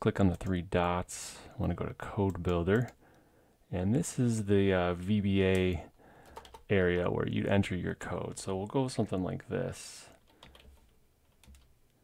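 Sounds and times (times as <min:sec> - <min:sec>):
faint keyboard typing: 0:01.6 - 0:03.2, 0:05.4 - 0:07.2, 0:10.1 - 0:12.0.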